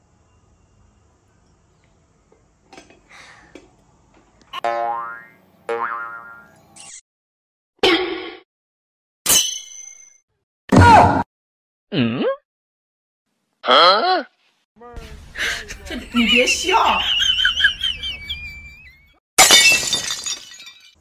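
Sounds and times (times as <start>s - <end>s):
cartoon boing twangs: 4.6s - 6.5s.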